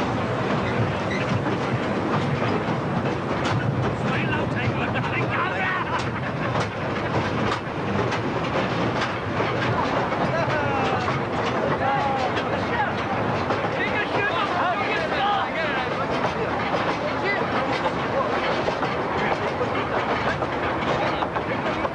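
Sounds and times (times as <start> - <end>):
train carriages rattling on rails: 0.0 - 21.9.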